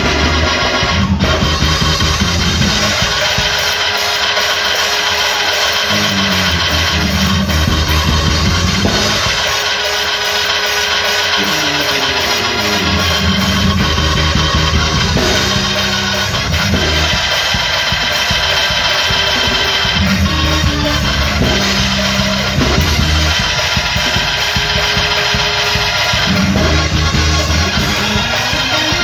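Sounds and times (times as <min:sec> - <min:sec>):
bass line: 0:00.0 - 0:03.4, 0:05.9 - 0:09.6, 0:11.4 - 0:29.0
drums: 0:00.0 - 0:29.0
loud band music: 0:00.0 - 0:29.0.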